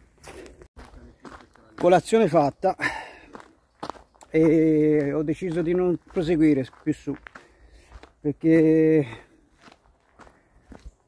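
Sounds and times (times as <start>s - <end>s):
soft footsteps on a trail: 0.0s - 11.0s.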